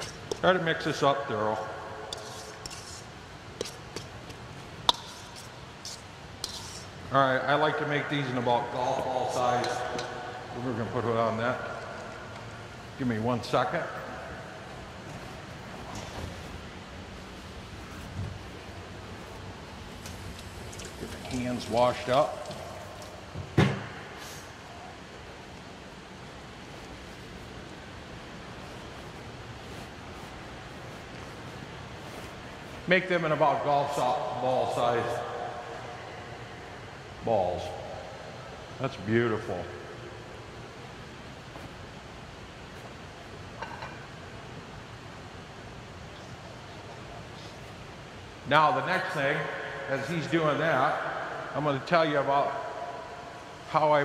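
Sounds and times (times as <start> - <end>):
hall background hiss: 4.9 - 43.5.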